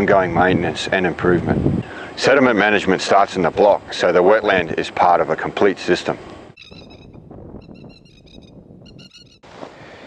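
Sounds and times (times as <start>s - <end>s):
rapid high animal chirps: 6.6s - 9.4s.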